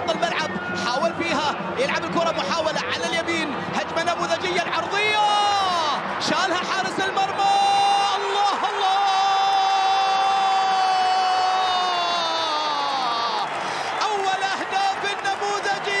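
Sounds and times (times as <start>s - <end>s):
commentator shouting: 0.0s - 16.0s
stadium crowd cheering: 0.0s - 16.0s.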